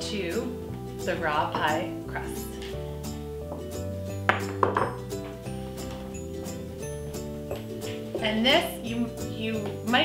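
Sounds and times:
background music: 0.0s - 10.0s
crockery clinking: 4.3s - 6.1s.

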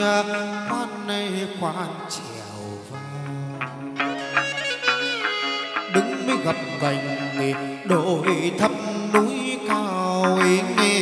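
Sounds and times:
pitch-bending melodic line: 2.9s - 11.0s.

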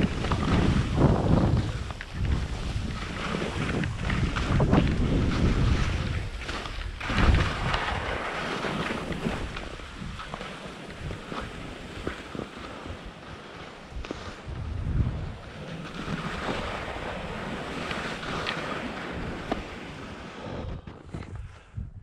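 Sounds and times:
ski edge clicks: 0.0s - 14.4s, 15.6s - 21.6s
skis scraping on snow: 0.0s - 21.8s
wind buffeting microphone: 0.0s - 22.0s.

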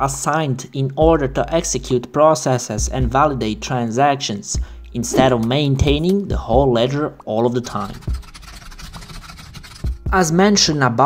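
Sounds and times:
fast keyboard typing: 7.7s - 10.0s.

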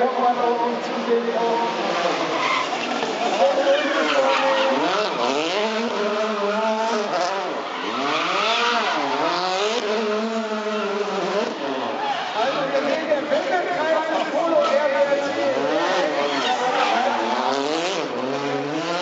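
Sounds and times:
rally car engine revving: 0.0s - 19.0s
tyres squealing on tarmac: 1.6s - 6.6s, 7.4s - 9.4s, 10.6s - 13.1s, 14.2s - 17.8s.

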